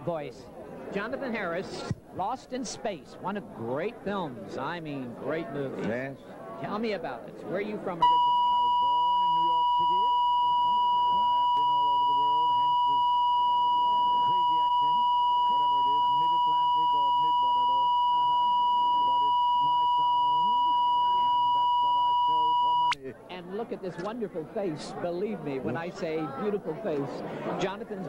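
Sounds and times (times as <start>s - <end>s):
muffled conversation: 0.0s - 8.1s, 8.8s - 21.2s, 22.2s - 28.0s
electronic test tone: 8.0s - 23.0s.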